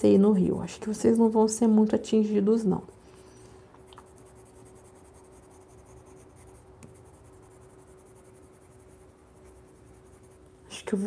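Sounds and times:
steady low hum: 0.0 - 11.0
pencil scratching on paper: 4.0 - 10.5.

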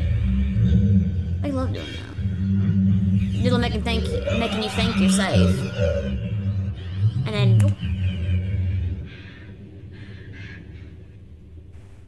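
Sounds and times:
low soundtrack rumble: 0.0 - 12.0.

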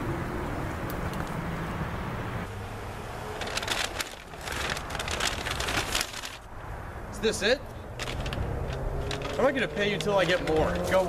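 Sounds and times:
rustling crunching noise: 3.4 - 6.6, 8.0 - 11.0.

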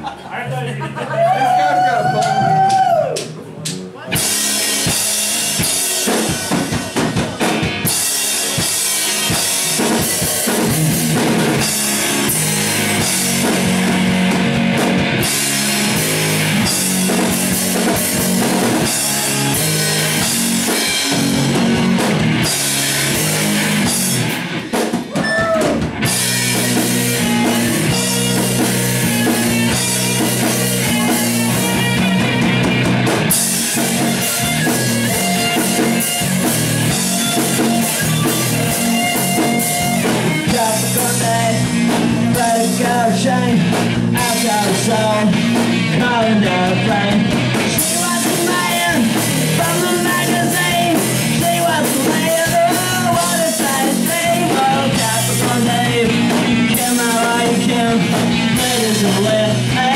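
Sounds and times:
bass guitar: 0.0 - 59.9
electric guitar: 0.0 - 59.9
drum kit: 1.2 - 59.9.

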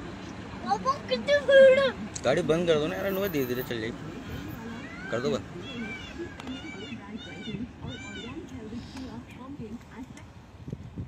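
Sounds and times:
peafowl calling: 4.7 - 9.0.

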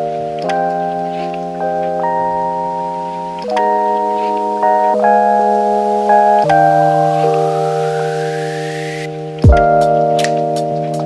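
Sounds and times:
soft sustained keyboard chords: 0.0 - 11.0.

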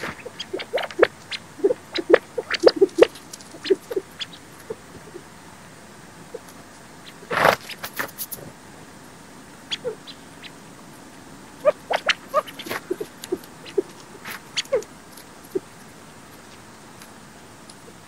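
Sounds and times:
quail pecks and clucks: 0.0 - 5.4, 6.2 - 8.6, 9.6 - 18.0
whir of wingbeats: 0.0 - 18.0.

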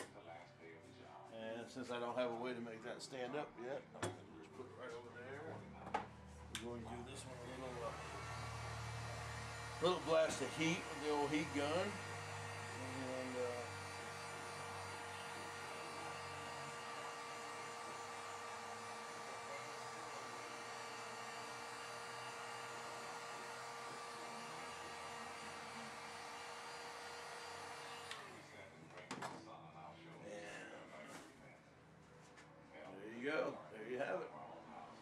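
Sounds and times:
heat gun blowing hot air: 7.5 - 28.4.

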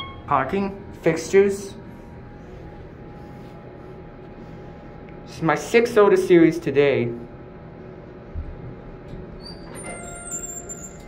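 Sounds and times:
elevator doors squeaking: 0.0 - 0.4, 9.3 - 11.0
elevator chime: 0.0 - 0.6, 9.7 - 11.0.

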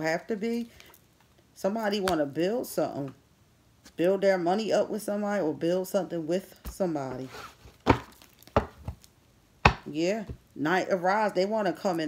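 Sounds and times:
cards tapped on hard tabletop: 9.7 - 9.9.

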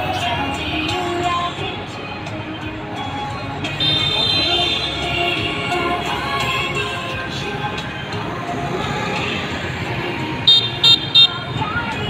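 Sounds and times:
street traffic: 0.0 - 12.0
scooter horn beeping: 3.8 - 5.6, 10.5 - 11.5.

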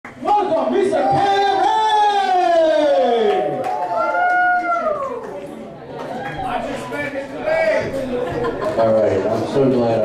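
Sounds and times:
voices whooping: 2.0 - 5.3.

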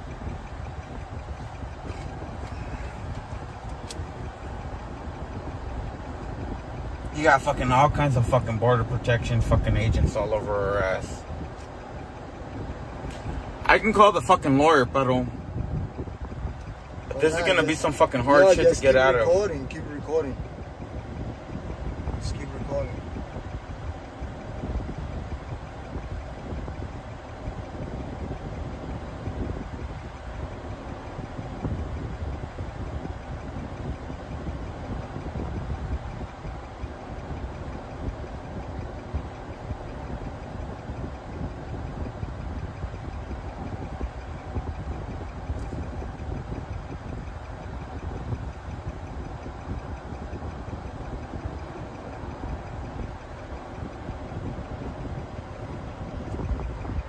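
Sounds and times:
car engine idling: 0.0 - 57.0.

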